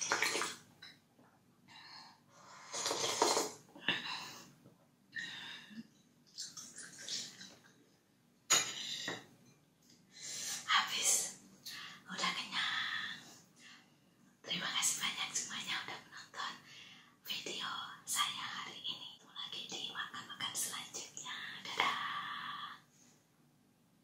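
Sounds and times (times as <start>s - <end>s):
woman whispering: 10.6s - 13.2s, 14.5s - 16.6s, 17.2s - 22.9s.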